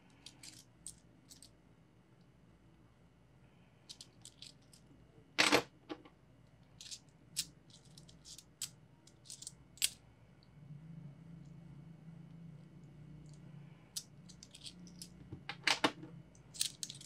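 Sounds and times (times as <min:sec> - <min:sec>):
coins clicking together: 0:16.4 - 0:17.0.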